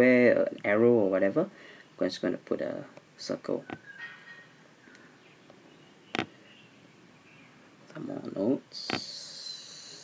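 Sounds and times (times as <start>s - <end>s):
tap on tablet glass screen: 6.1s - 6.3s.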